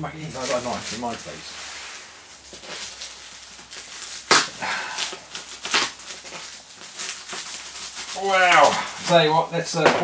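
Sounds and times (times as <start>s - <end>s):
plastic packaging ripping: 0.0s - 9.6s.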